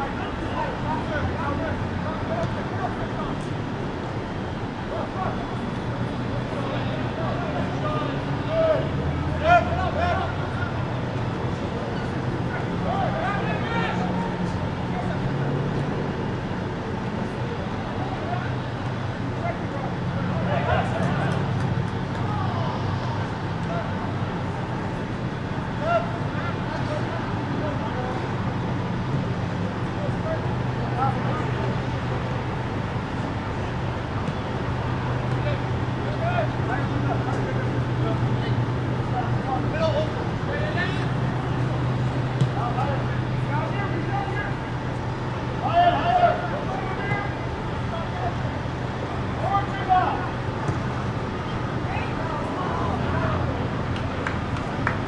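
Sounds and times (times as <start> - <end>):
distant players shouting: 6.4 - 11.0, 11.9 - 15.6, 17.6 - 29.0, 33.9 - 55.0
men shouting: 45.6 - 47.4.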